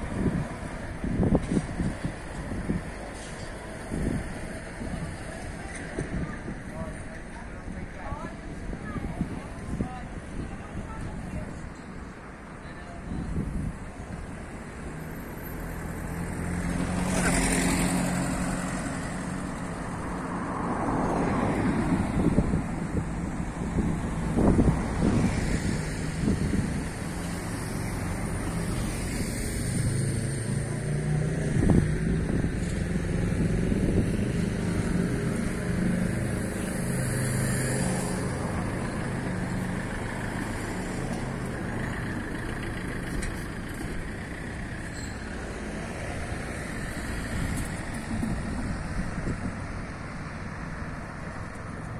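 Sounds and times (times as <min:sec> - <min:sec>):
car and van engines running: 0:00.0 - 0:51.9.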